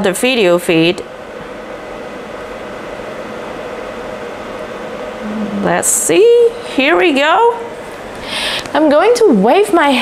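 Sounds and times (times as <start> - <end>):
mechanical hum and hiss: 0.0 - 10.0.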